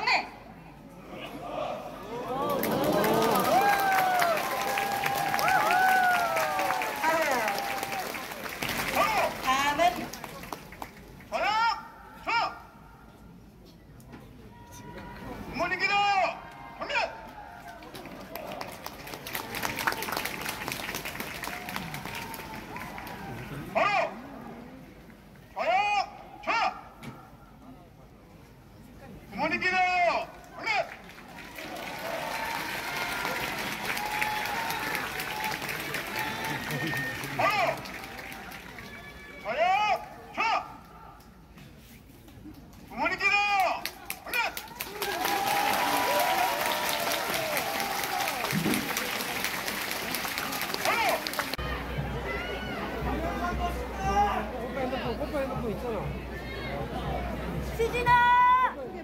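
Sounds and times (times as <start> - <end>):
crowd noise: 0.0 - 59.0.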